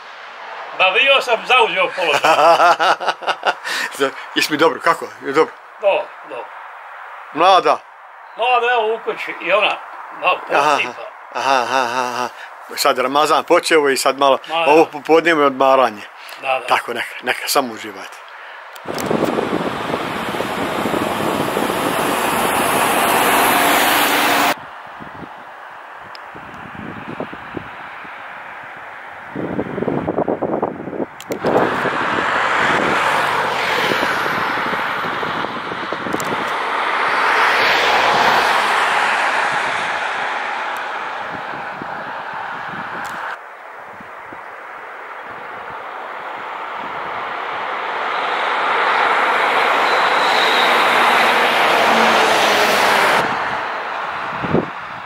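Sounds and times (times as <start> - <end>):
cars passing: 0.0 - 55.0.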